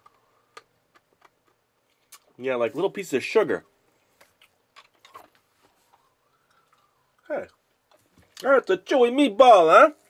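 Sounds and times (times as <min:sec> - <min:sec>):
gum chewing clicks: 0:04.2 - 0:08.5.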